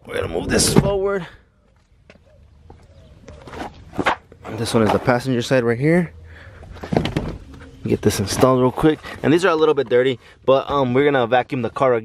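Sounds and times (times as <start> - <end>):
footsteps on concrete: 1.6 - 5.1.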